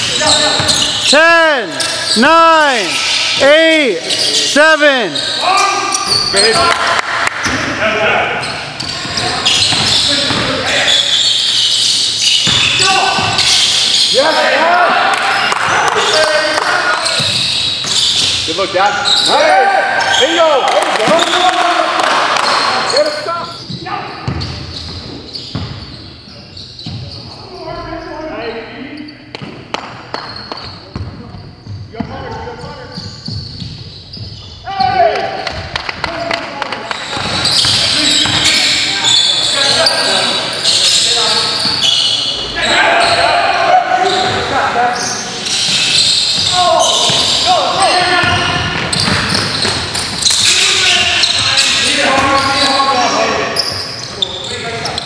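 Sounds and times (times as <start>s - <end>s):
basketball bouncing on court: 0.5s - 1.0s, 8.8s - 10.6s, 12.3s - 13.8s, 17.1s - 18.4s, 23.7s - 25.9s, 29.4s - 32.3s, 37.0s - 38.6s, 45.6s - 50.5s
people shouting: 42.5s - 44.2s.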